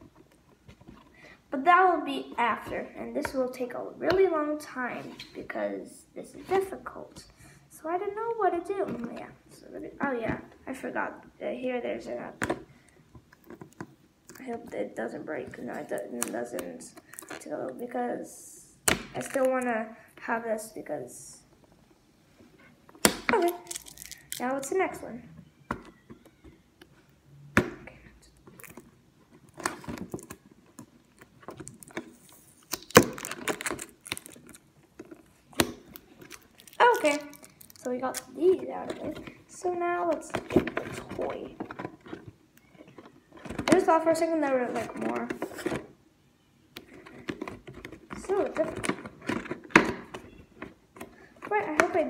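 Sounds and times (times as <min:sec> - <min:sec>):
person speaking: 0:01.5 - 0:12.4, 0:14.3 - 0:21.5, 0:23.2 - 0:25.3, 0:36.2 - 0:41.7, 0:48.1 - 0:49.0, 0:51.4 - 0:52.0.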